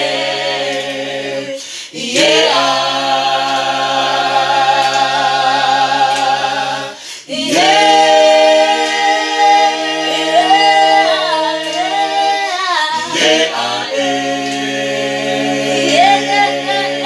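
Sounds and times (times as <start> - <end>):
group singing a cappella: 0.0 - 17.0.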